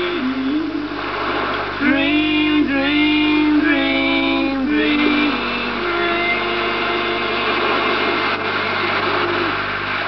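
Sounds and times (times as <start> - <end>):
low steady hum: 0.0 - 10.0
loud noisy engine-like drone: 4.9 - 10.0.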